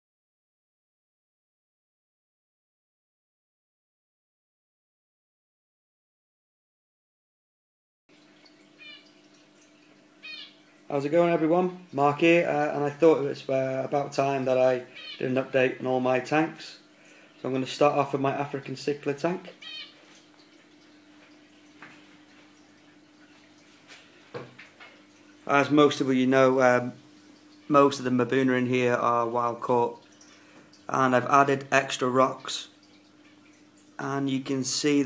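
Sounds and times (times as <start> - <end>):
low hum of aquarium tanks: 8.1 - 35.0.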